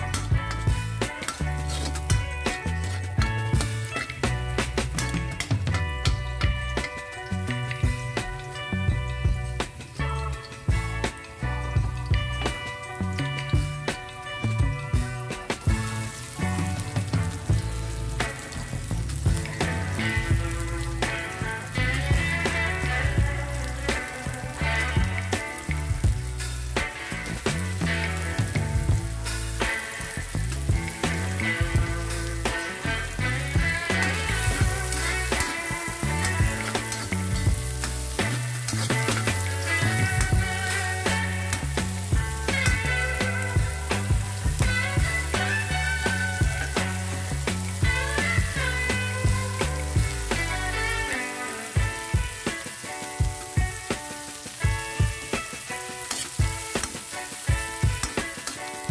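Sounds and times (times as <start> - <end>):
background music with bass line: 0.0 - 58.9
vegetables sizzling in a wok: 0.0 - 58.9
stirring scrapes and clicks: 0.1 - 6.9, 55.7 - 58.9.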